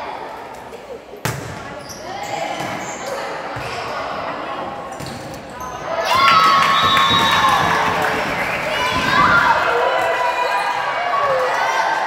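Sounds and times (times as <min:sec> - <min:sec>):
crowd shouting and cheering: 0:05.6 - 0:12.0.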